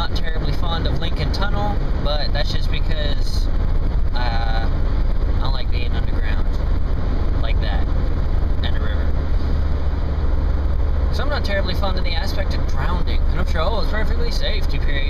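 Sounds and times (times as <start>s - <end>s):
car interior road and engine rumble: 0.0s - 15.0s.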